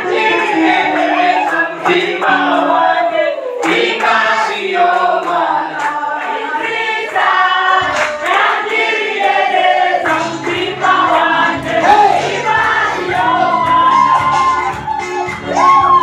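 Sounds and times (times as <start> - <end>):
group singing worship song: 0.0 - 16.0.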